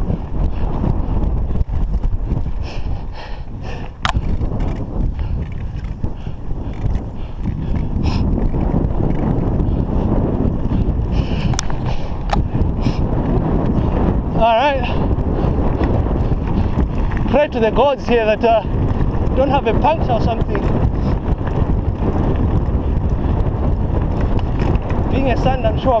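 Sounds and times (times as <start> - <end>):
bike clicks and rattles: 0.0 - 26.0
bike tyres rumbling on gravel: 0.0 - 26.0
wind on microphone: 0.0 - 26.0.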